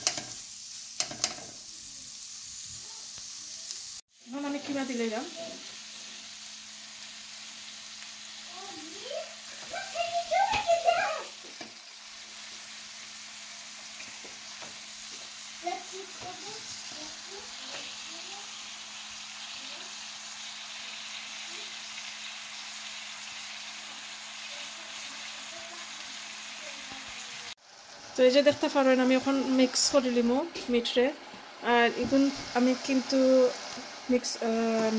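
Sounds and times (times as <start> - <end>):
food sizzling in a pan: 0.0 - 34.9.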